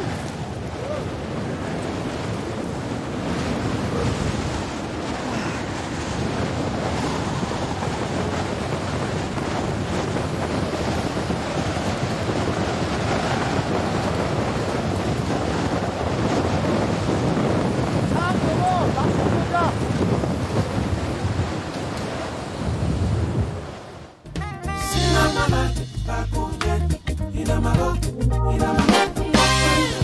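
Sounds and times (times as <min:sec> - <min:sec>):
blizzard wind buffeting microphone: 0:00.0 - 0:24.2.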